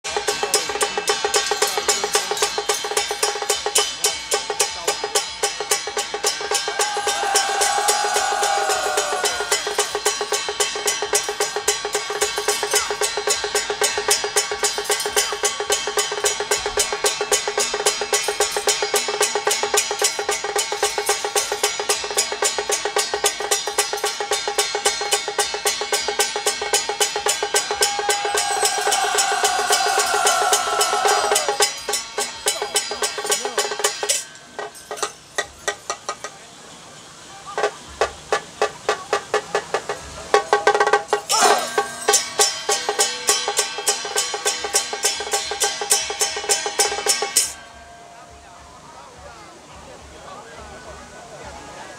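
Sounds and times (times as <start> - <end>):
drum gongs and cymbals beating: 0.0 - 51.9
falling ringing tone: 27.7 - 32.0.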